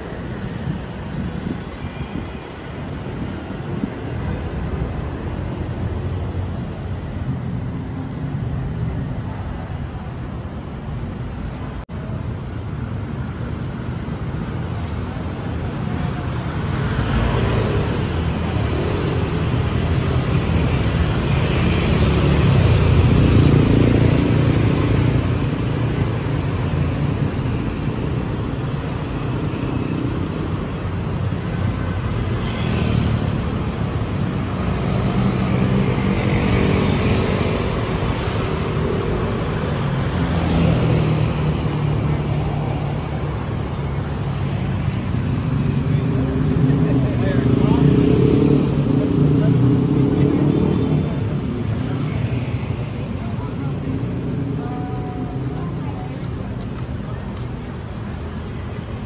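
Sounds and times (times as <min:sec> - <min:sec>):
cars and motorbikes passing: 0:00.0 - 0:59.0
indistinct voices of passers-by: 0:00.0 - 0:59.0.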